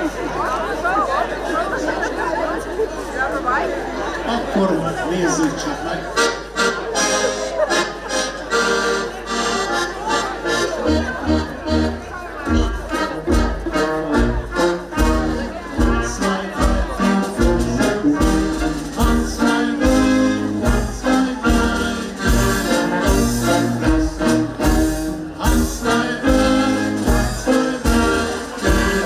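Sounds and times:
folk band with brass playing: 0.0s - 29.0s.

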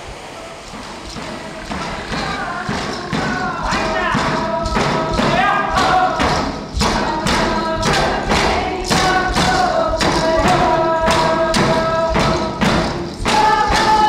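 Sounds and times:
steady drumbeat: 0.0s - 14.0s
voices singing long notes: 0.0s - 14.0s.

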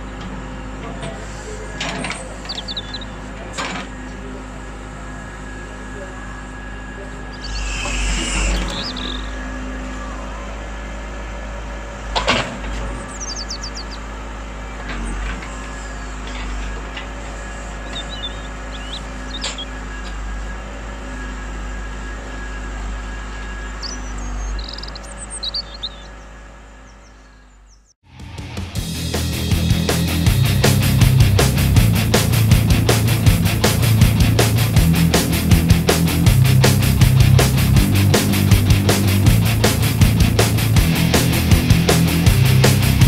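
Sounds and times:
toy excavator motor whine: 7.3s - 10.3s.

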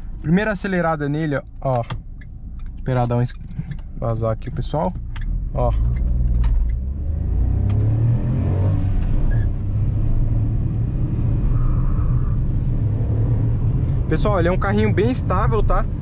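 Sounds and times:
car engine accelerating: 2.9s - 16.0s.

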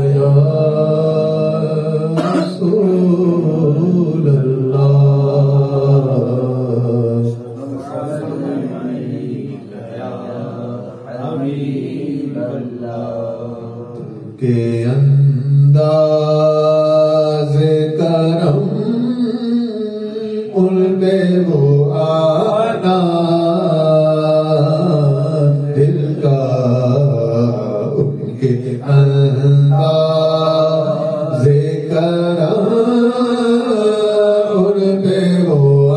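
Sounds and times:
man chanting into a microphone: 0.0s - 35.9s.

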